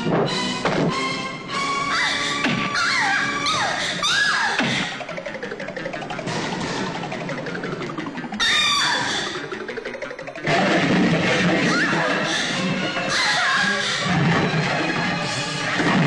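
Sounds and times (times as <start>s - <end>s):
dramatic film music: 0.0s - 16.0s.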